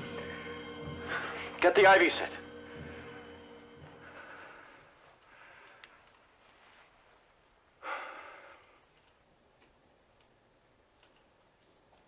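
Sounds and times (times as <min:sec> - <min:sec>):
breathy sigh: 0:07.8 - 0:08.8.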